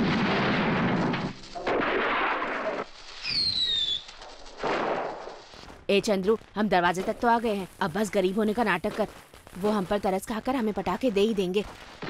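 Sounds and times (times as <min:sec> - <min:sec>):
firecrackers bursting: 0:00.0 - 0:12.0
falling firework whistle: 0:01.9 - 0:05.3.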